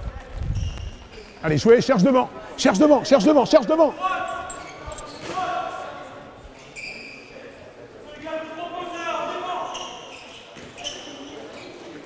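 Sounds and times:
shoe squeaks on hall floor: 0:00.4 - 0:01.4, 0:04.3 - 0:05.4, 0:06.6 - 0:07.6, 0:09.5 - 0:12.0.

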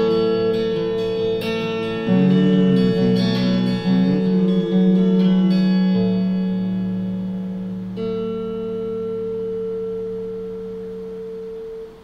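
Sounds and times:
electric guitar chords ringing: 0:00.0 - 0:12.0.

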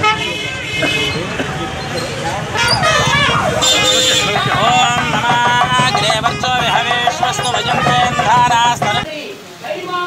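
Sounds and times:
vehicle horn toot: 0:00.0 - 0:09.0
people talking: 0:00.0 - 0:10.0
traffic noise: 0:00.0 - 0:10.0.

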